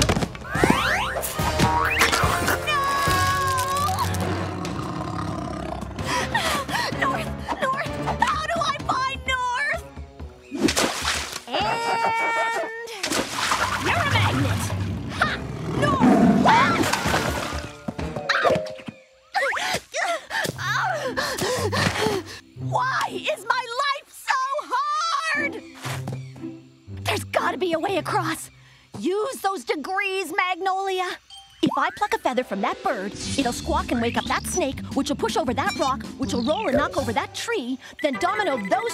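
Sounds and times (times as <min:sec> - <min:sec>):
girl screaming: 0:02.5 - 0:04.2, 0:11.5 - 0:12.9, 0:24.3 - 0:25.5
woman talking: 0:06.8 - 0:09.8, 0:13.8 - 0:16.9, 0:27.1 - 0:38.9
water splash: 0:10.6 - 0:11.5, 0:13.0 - 0:14.9, 0:16.7 - 0:17.7
cartoon music: 0:31.6 - 0:38.9.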